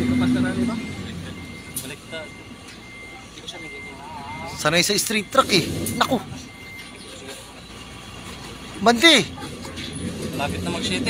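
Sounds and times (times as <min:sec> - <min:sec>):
faint voices: 0:00.0 - 0:11.0
truck engine rumble: 0:00.0 - 0:11.0
truck reversing alarm beeping: 0:00.0 - 0:11.0.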